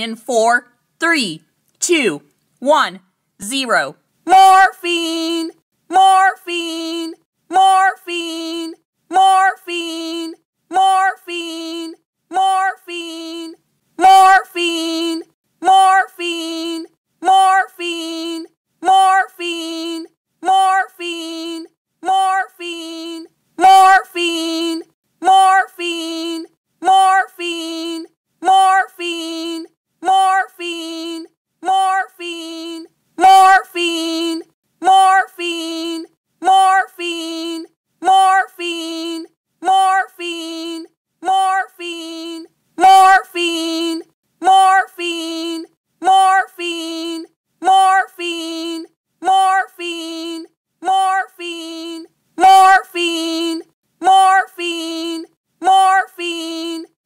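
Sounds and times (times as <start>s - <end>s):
high-pitched voice yelling: 0.0s - 57.0s.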